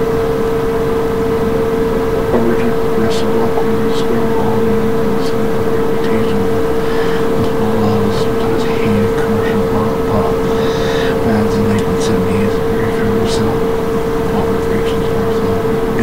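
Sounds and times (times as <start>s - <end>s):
loud steady electrical tone: 0.0s - 16.0s
faint indistinct speech: 2.3s - 16.0s.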